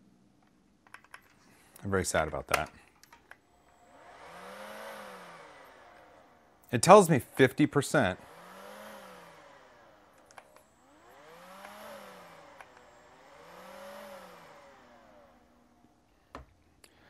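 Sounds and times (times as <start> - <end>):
handheld vacuum motor whirring: 3.2 - 16.1.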